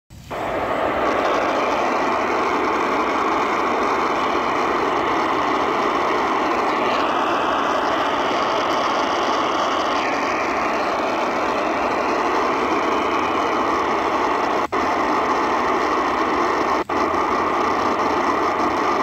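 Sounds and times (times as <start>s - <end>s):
radio static hiss: 0.1s - 19.0s.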